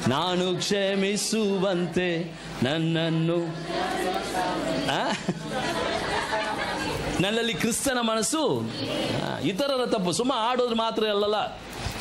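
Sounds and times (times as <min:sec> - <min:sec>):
murmur of voices: 0:00.0 - 0:11.7.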